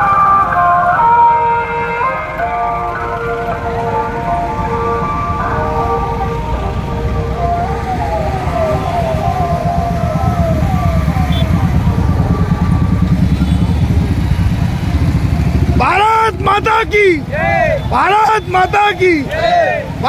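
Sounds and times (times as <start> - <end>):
police siren whooping: 0.0 - 20.0
rumble of motorcycle engines: 0.0 - 20.0.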